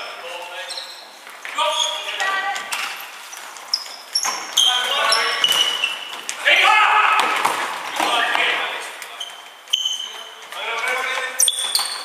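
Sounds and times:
shoes squeaking on wooden floor: 0.0 - 6.5, 7.3 - 12.0.

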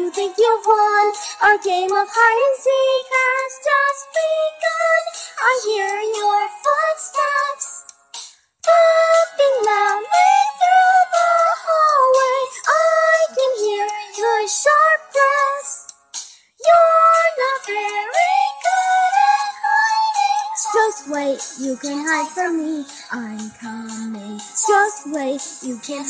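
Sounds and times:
backing music: 7.9 - 26.0
synthetic high-pitched singing: 16.6 - 26.0.

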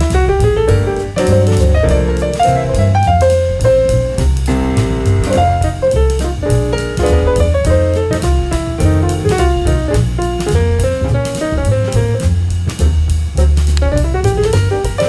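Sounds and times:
instrumental music with drum beat: 0.0 - 15.0.

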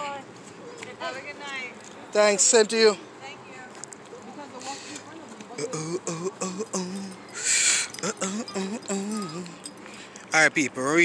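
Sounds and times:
person chanting sing-song: 7.9 - 9.7.

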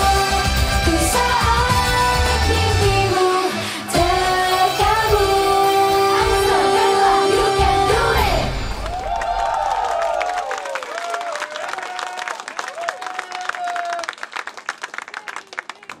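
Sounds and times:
live pop song with female vocals: 0.0 - 8.7
audience cheering and shouting: 6.2 - 14.1
audience clapping: 8.7 - 16.0.

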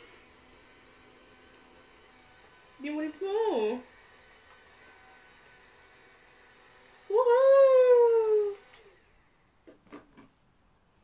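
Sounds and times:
bubble machine motor whine: 0.0 - 9.2.

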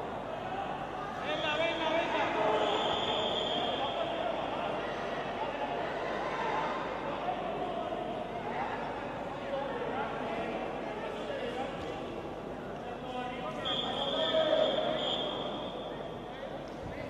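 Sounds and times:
high-pitched whistle-like tone: 2.5 - 3.8, 13.6 - 15.9.

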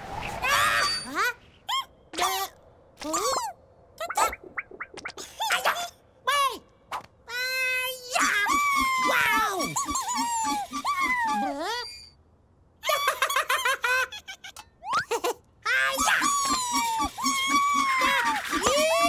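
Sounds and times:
squeaky cartoon voices: 0.5 - 4.4, 7.3 - 12.2, 15.7 - 19.0.

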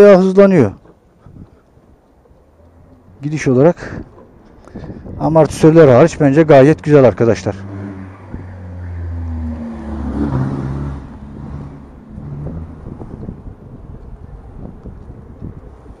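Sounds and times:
road rumble: 0.0 - 16.0
wind on microphone: 1.2 - 2.0, 3.8 - 5.6, 7.8 - 8.6, 9.4 - 16.0.

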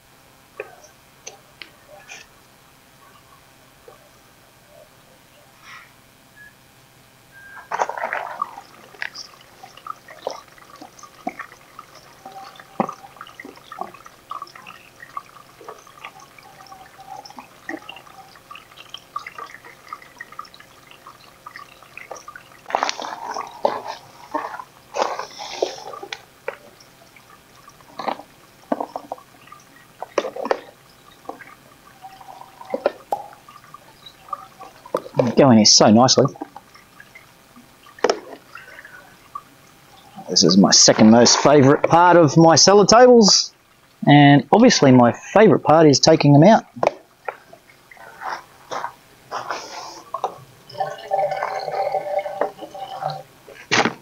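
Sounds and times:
water dripping and splashing: 7.4 - 45.0, 45.7 - 54.0.

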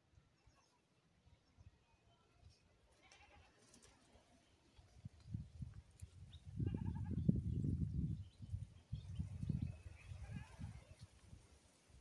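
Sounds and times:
goat bleating: 3.0 - 3.6.

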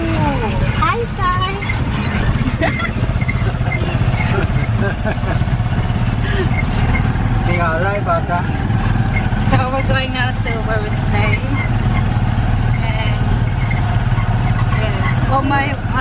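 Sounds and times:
motorcycle engine running: 0.0 - 16.0
voices: 0.0 - 16.0.

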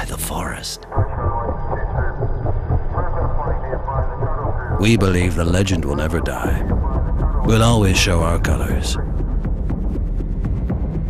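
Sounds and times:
muffled voices: 0.0 - 9.0
steady low rumble: 0.0 - 11.0.

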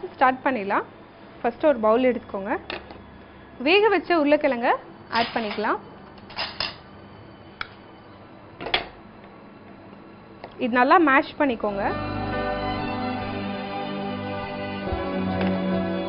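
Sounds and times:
woman speaking: 0.0 - 0.9, 1.5 - 2.7, 3.6 - 5.8, 10.6 - 12.0.

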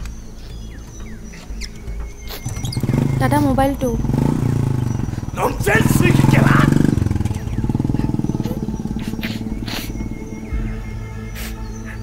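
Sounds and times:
motorcycle engine idling: 0.1 - 12.0
high-pitched chirps: 6.2 - 12.0.

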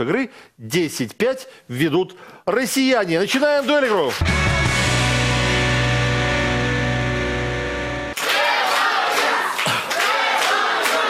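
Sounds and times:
many voices calling out: 8.2 - 11.0.

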